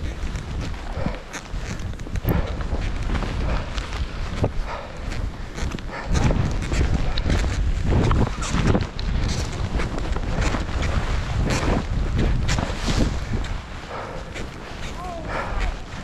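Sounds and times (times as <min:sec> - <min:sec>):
skis swishing through powder snow: 0:00.0 - 0:16.0
wind buffeting microphone: 0:00.0 - 0:16.0.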